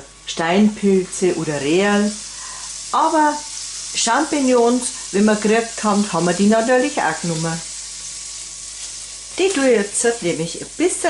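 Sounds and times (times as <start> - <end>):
butter sizzling in a frying pan: 0.1 - 11.0.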